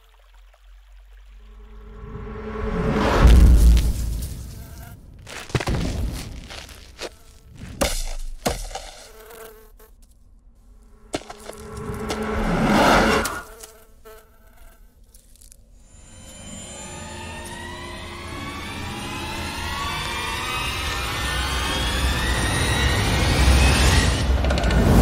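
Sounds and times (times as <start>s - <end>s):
fly buzzing rising in pitch: 4.2s - 5.6s, 6.4s - 7.6s, 8.8s - 10.0s, 10.9s - 23.6s
fly whooshing past: 11.1s - 13.8s.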